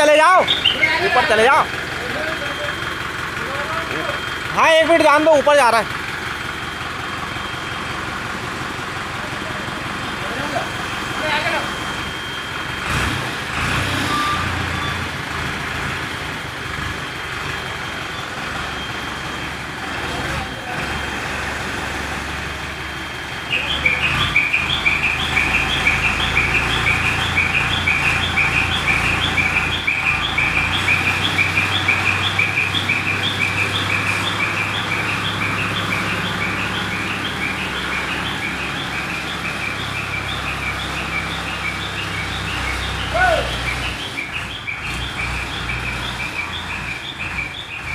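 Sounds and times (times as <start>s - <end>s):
chirping reversing alarm: 0.0s - 16.1s, 17.0s - 47.9s
diesel engine running: 0.0s - 47.9s.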